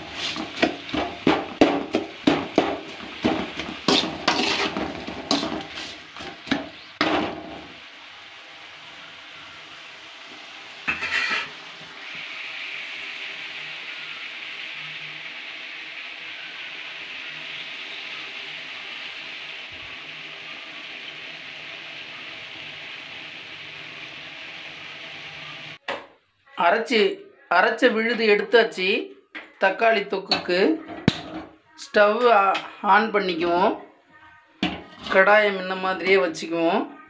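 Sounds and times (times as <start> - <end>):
metal ladle scraping a pan: 0.0 - 7.2, 10.8 - 11.8, 34.6 - 35.3
vegetables frying in a pan: 0.0 - 25.8.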